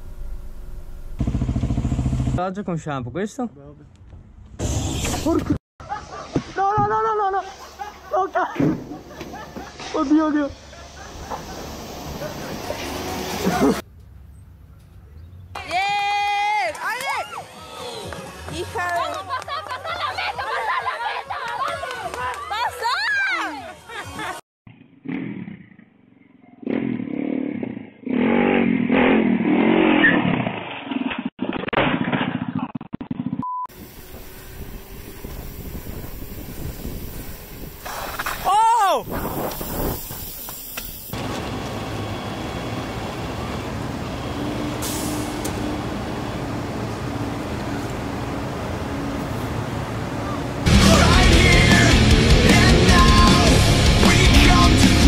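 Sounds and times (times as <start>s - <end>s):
dirt bike engine revving: 1.2s - 2.4s, 26.6s - 30.3s
steady hiss: 33.8s - 38.4s, 39.0s - 41.2s
person shouting: 38.4s - 39.1s
pressure washer spraying metal grating: 39.2s - 41.2s.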